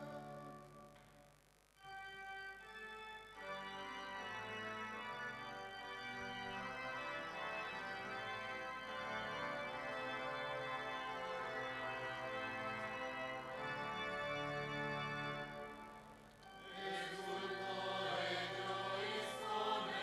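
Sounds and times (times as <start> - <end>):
choir singing: 0.0 - 0.6, 16.5 - 20.0
church organ chords: 0.0 - 20.0.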